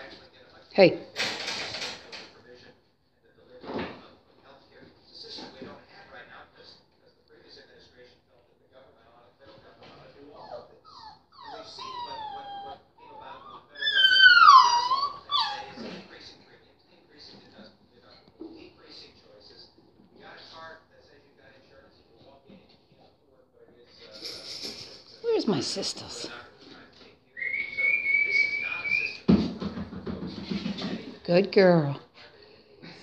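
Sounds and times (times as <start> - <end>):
puppy whining: 10.3 - 16.1, 27.4 - 29.3
long high whistle: 27.4 - 29.2.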